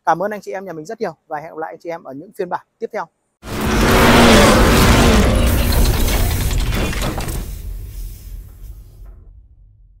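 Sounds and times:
loud hit with deep rumble: 3.5s - 10.0s
dense rattling clicks: 5.7s - 7.6s.

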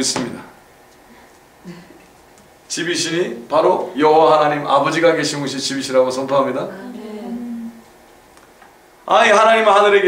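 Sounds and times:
man humming: 6.6s - 7.8s.

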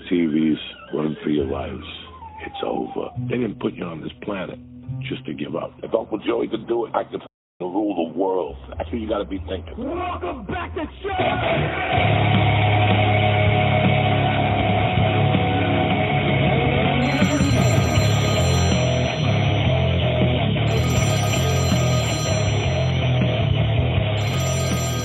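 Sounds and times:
intro music: 16.7s - 25.0s
telephone ringing: 17.0s - 25.0s.

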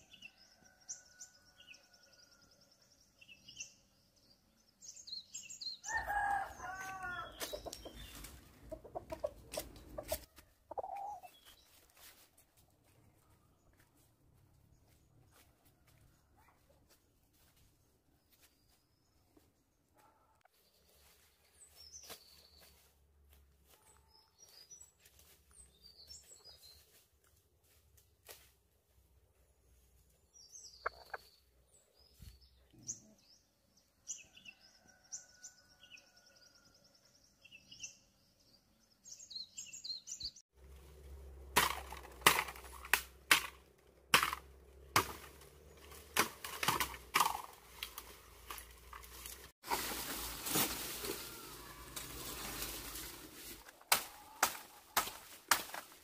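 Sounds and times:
small birds chirping: 0.0s - 12.2s, 29.4s - 40.5s
bamboo cracking and breaking: 41.4s - 56.0s.

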